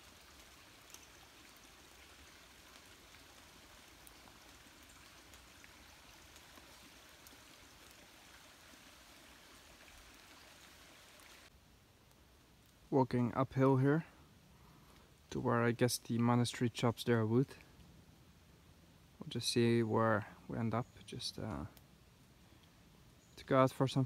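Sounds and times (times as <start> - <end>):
creek rushing: 0.0 - 11.5
raindrops dripping: 0.0 - 13.4.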